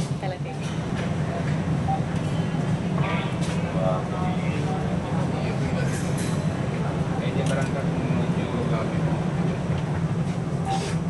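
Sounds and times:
train rumble and hum: 0.0s - 11.0s.

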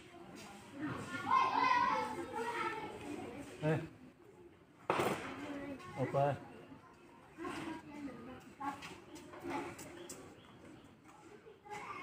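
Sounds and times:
children's voices: 0.0s - 3.6s, 6.6s - 12.0s.

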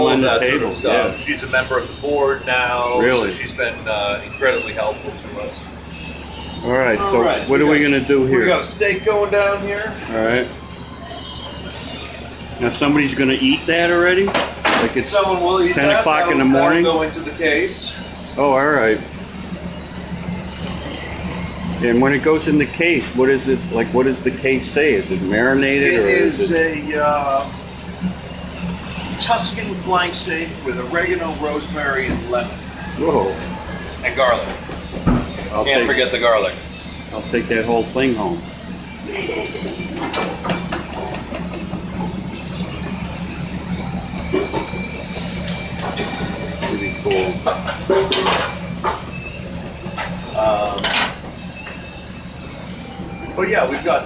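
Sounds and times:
gas burner hum: 0.0s - 54.0s
low mechanical drone: 0.0s - 54.0s
steak sizzling on grill pan: 11.7s - 54.0s.

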